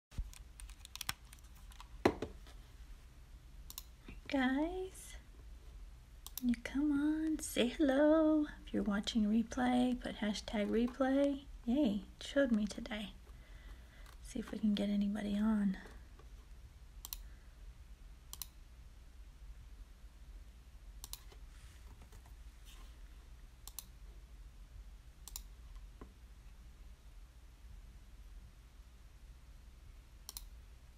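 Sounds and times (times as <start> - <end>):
low steady hum: 0.1 - 30.9
sharp double clicks: 3.7 - 3.9.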